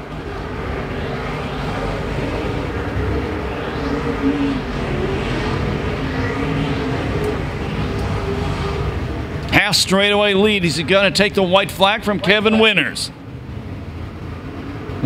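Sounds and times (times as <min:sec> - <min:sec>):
race car engines: 0:00.0 - 0:15.0.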